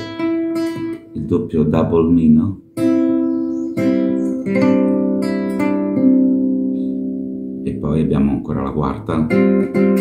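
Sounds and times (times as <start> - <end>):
classical guitar arpeggios: 0.0 - 10.0.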